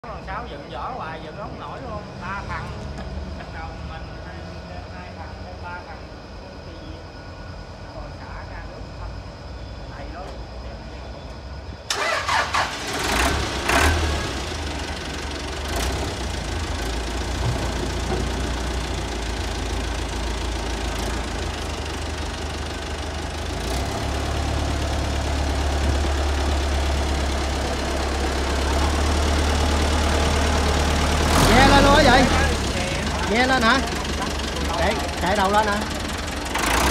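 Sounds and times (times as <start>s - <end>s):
tractor diesel engine rumbling: 0.0s - 36.9s.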